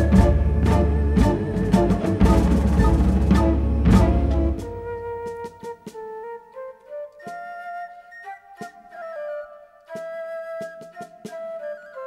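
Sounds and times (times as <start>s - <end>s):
woodwind melody: 0.0s - 12.0s.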